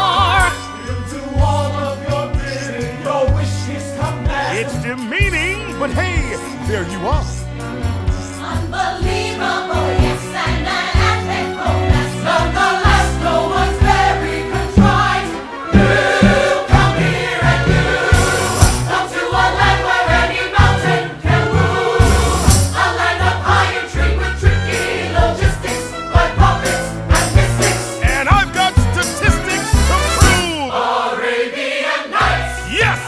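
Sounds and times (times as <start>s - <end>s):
pit orchestra with percussion: 0.0s - 19.7s, 20.3s - 30.9s
ensemble choir singing: 0.9s - 4.9s, 7.6s - 33.0s.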